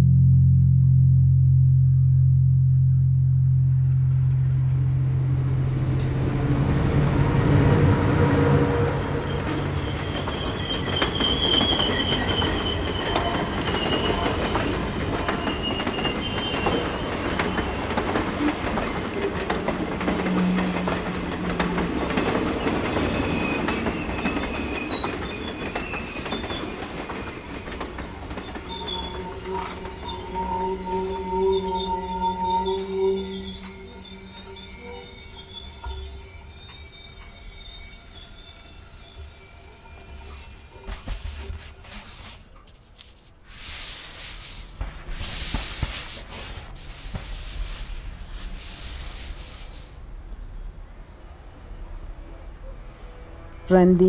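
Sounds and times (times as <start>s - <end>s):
train wheels rumbling on rail: 5.8s - 34.5s
high wheel squeal: 7.1s - 50.0s
rail clicks: 8.4s - 41.3s.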